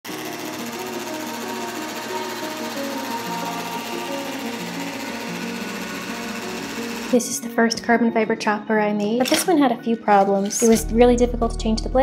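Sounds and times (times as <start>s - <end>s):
chopper machine rapid clatter: 0.1s - 7.2s
background music: 0.1s - 12.0s.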